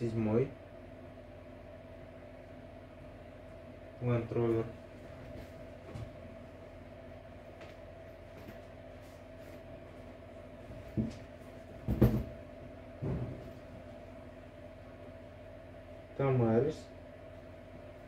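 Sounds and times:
steady background hum: 0:00.0 - 0:18.0
boots thumping on table: 0:11.8 - 0:12.4, 0:13.0 - 0:13.5.

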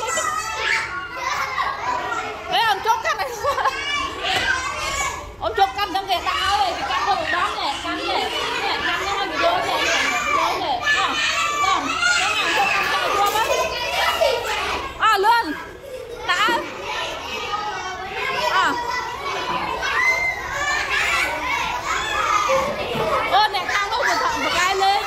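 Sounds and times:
young children chattering: 0:00.0 - 0:25.0.

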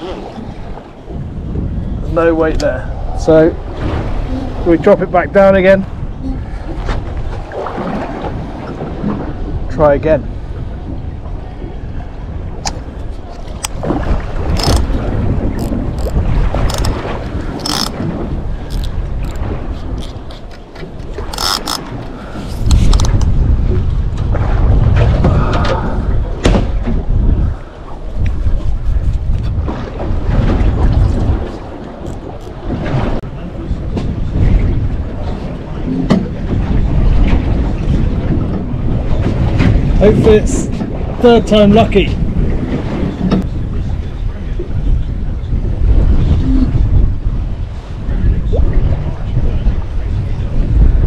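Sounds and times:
water against hull: 0:00.0 - 0:51.0
wind buffeting microphone: 0:00.0 - 0:51.0
fishing tackle clicks and knocks: 0:14.5 - 0:15.0, 0:15.6 - 0:18.0, 0:18.6 - 0:23.3.

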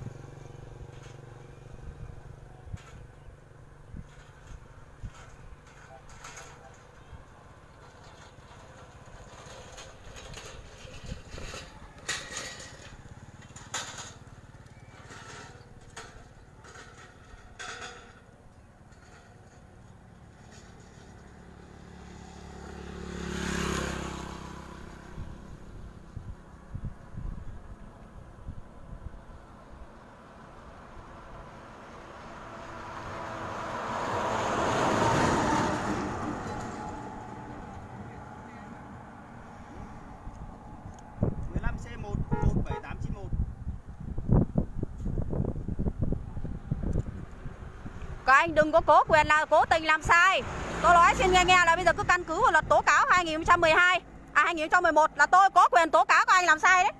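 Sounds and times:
motorcycle engines droning: 0:00.0 - 0:56.9
vehicle passing by: 0:18.8 - 0:56.9.

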